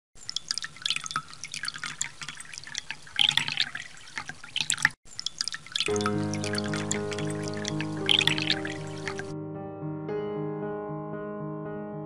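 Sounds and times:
raindrops splashing on water: 0:00.2 - 0:09.3
music: 0:05.9 - 0:12.0.

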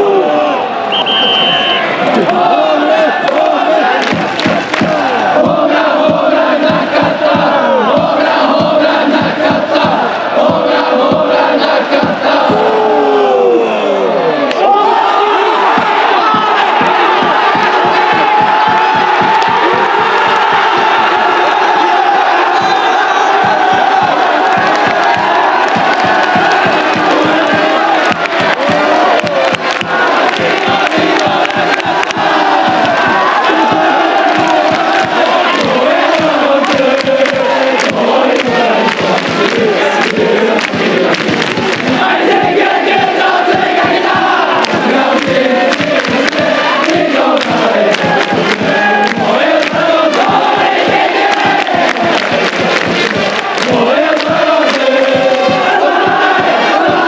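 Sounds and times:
crowd chanting a cheer song: 0:00.0 - 0:57.0
steady beat: 0:03.4 - 0:12.7, 0:15.7 - 0:57.0.

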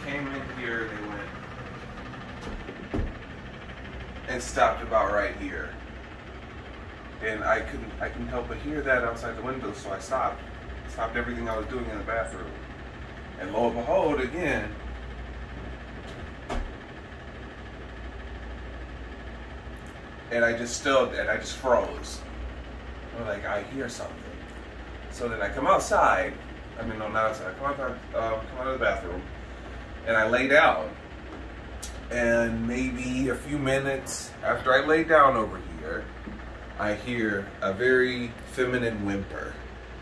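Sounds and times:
air conditioning hum: 0:00.0 - 0:40.0.

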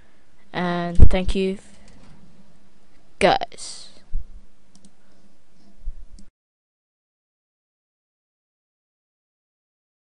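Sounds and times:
steady low hum: 0:00.0 - 0:06.3.

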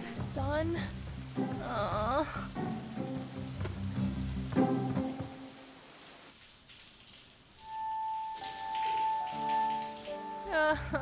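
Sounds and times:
background music: 0:00.0 - 0:05.8, 0:07.6 - 0:11.0
shower spraying water: 0:00.1 - 0:11.0.

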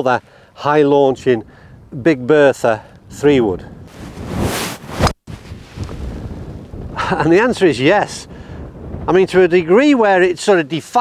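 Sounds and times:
wind noise on microphone: 0:01.0 - 0:10.4.

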